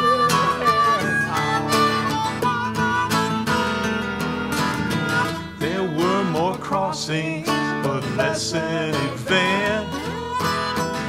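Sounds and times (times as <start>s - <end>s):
acoustic guitar strumming: 0.0s - 11.0s
harmonica melody: 0.0s - 11.0s.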